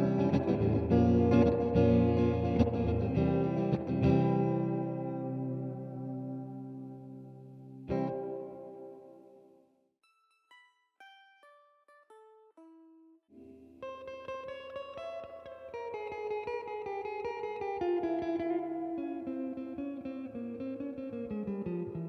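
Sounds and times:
clean electric guitar with reverb: 0.0 - 9.6, 11.9 - 22.0.

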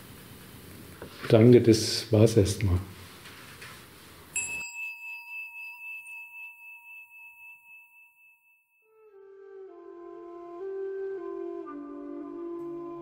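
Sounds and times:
bell ringing: 4.4 - 8.9.

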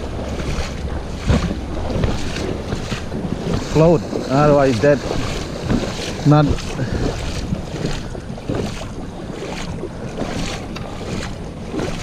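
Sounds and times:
footsteps splashing through water: 0.0 - 12.0
wind noise on microphone: 0.0 - 12.0.

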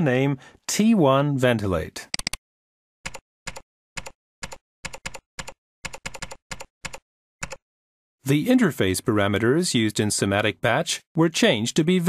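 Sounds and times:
keyboard keystroke clicks: 2.1 - 2.4.

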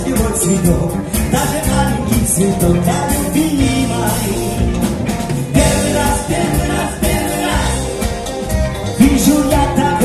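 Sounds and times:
bass guitar: 0.0 - 10.0
drums: 0.0 - 10.0
electric guitars: 0.0 - 10.0
keyboard: 0.0 - 10.0
person singing: 9.0 - 10.0.

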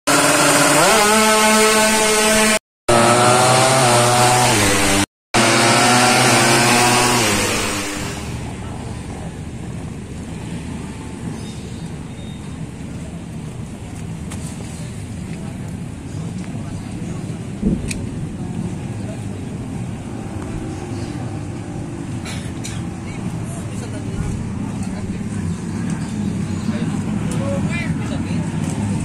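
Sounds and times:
motorcycle engine revving hard: 0.1 - 8.5
outdoor street noise: 0.1 - 29.0.

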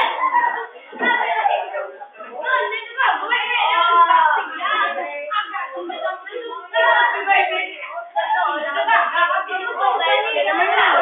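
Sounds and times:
students talking and calling out: 0.0 - 11.0.

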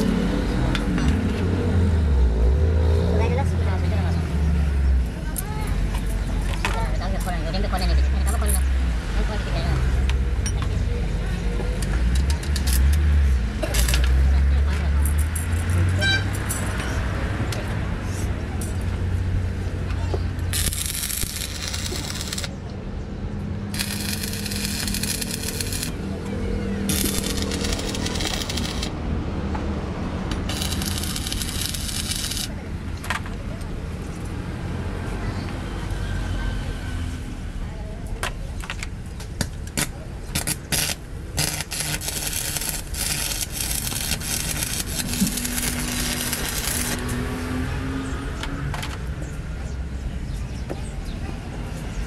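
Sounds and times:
arc welding crackling and sizzling: 13.6 - 14.3, 20.3 - 22.6, 23.7 - 26.1, 26.8 - 29.0, 30.3 - 32.6, 39.8 - 47.6
electrode sputters: 20.5 - 22.5, 23.7 - 26.0, 26.9 - 28.9, 30.4 - 32.5, 40.4 - 47.1.

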